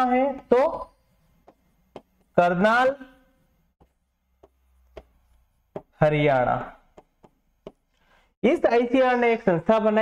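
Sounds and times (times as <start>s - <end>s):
pen tip tapping on board: 7.0s - 7.9s.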